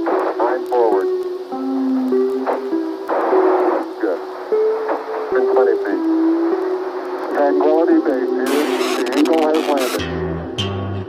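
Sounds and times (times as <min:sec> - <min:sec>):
radio-filtered voice speaking: 0:00.0 - 0:01.2, 0:02.5 - 0:04.3, 0:05.3 - 0:10.0
radio hiss burst: 0:00.0 - 0:10.0
sustained music notes: 0:01.4 - 0:11.0.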